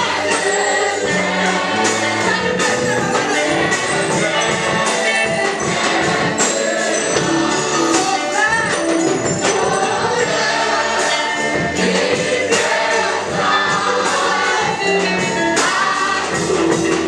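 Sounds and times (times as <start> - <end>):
band with steady percussion: 0.0 - 17.0
choir singing: 0.0 - 17.0
lead singer: 0.0 - 17.0.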